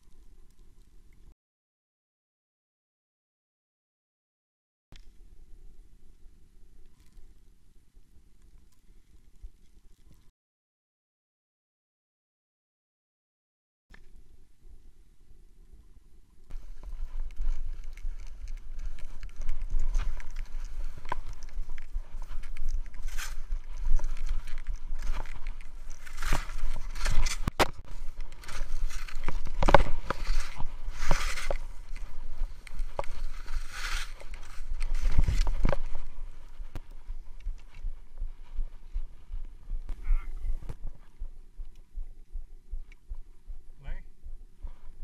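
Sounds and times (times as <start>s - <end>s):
wind rumble on microphone: 16.5s - 45.0s
skis hissing over snow: 33.2s - 34.6s.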